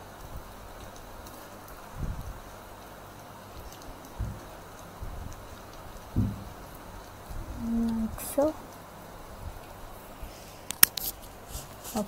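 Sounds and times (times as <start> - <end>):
soft low thumps: 1.9 - 2.5, 4.0 - 8.3.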